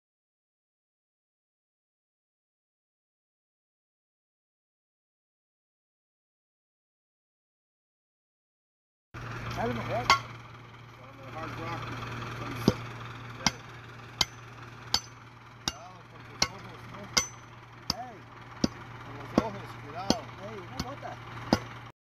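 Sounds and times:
steady low hum: 0:09.2 - 0:21.9
steel bar pounding in iron mortar: 0:09.8 - 0:10.4, 0:12.5 - 0:21.8.

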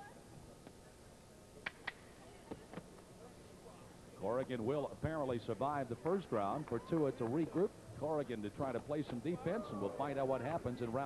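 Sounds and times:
faint arena background: 0:00.0 - 0:11.0.

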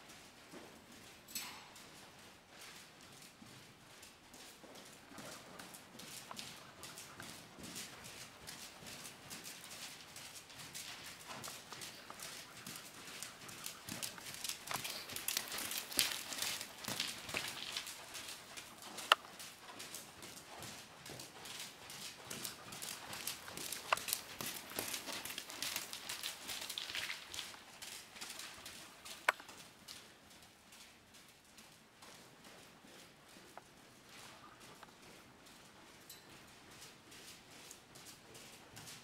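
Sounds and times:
horse hoofbeats trotting on sand: 0:00.0 - 0:39.0.

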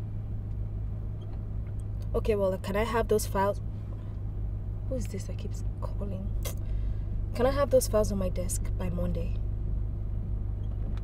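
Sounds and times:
car interior engine and road noise: 0:00.0 - 0:11.0.

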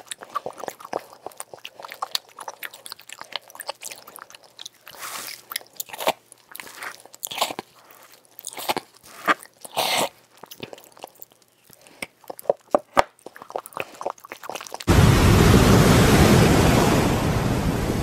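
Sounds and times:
chewing soap crunches: 0:00.0 - 0:14.9.

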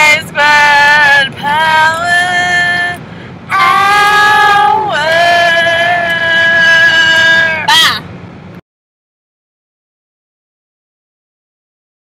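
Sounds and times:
women singing a jingle: 0:00.0 - 0:07.8
car road hum: 0:00.0 - 0:08.6.

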